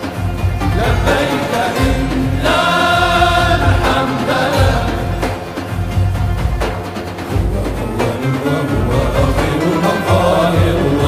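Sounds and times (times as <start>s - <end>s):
large frame drum beats: 0.0s - 11.0s
male chorus singing in unison: 0.6s - 5.8s, 7.4s - 11.0s.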